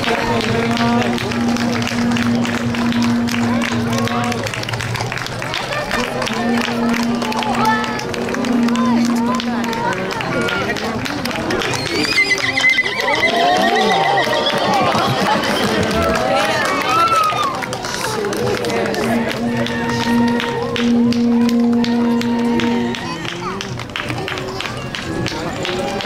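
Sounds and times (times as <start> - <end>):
crowd chatter: 0.0 - 26.0
horse whinny: 11.8 - 14.9.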